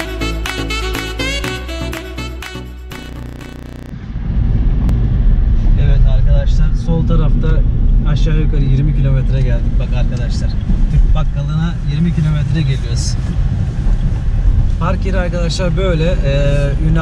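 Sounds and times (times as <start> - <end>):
background music: 0.0 - 3.9
car engine and tyre rumble: 3.9 - 17.0.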